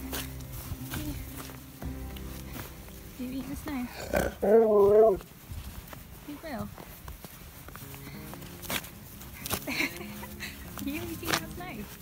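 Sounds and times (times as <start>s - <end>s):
dog howling woo: 4.4s - 5.2s.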